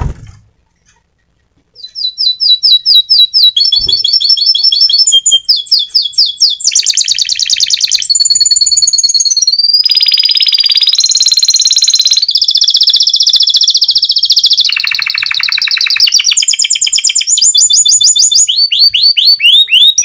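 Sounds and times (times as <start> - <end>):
canary singing trills: 1.3 - 20.0.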